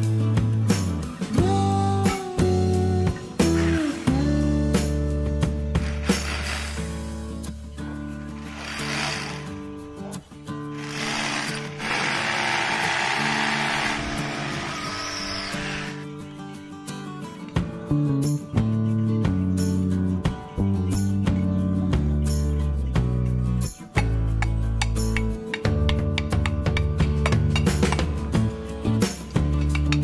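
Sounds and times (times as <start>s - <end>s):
guitar music: 0.0s - 30.0s
hammer drill boring into concrete: 3.4s - 4.3s, 5.8s - 7.0s, 8.3s - 9.6s, 10.8s - 16.1s.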